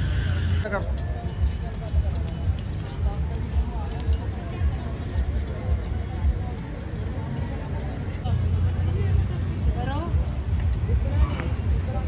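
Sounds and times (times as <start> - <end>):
light clinks: 0.7 - 12.0.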